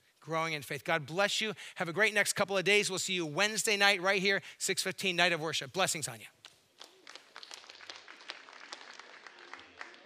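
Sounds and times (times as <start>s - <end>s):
faint scattered applause: 6.4s - 10.0s.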